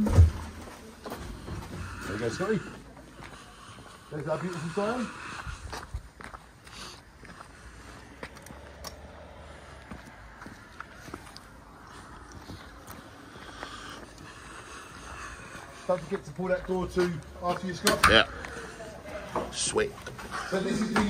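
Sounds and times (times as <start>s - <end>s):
footsteps: 0.0s - 21.0s.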